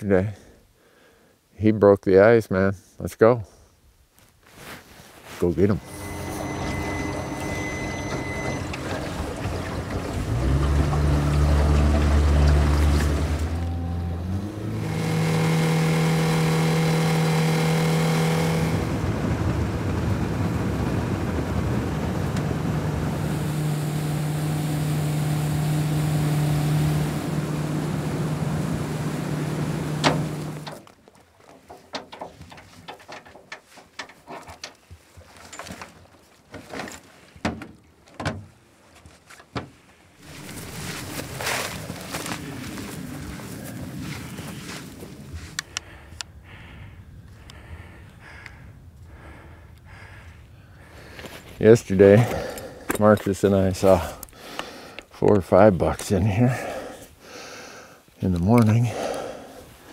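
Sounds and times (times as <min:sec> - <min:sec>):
outboard motor running: 0:05.7 - 0:30.9, 0:40.2 - 0:46.0.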